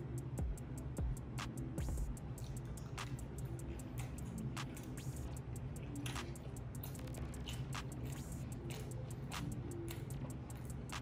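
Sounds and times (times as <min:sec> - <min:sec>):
faint music: 0:00.0 - 0:11.0
low steady hum: 0:00.0 - 0:11.0
person chewing with wet mouth clicks: 0:02.4 - 0:11.0.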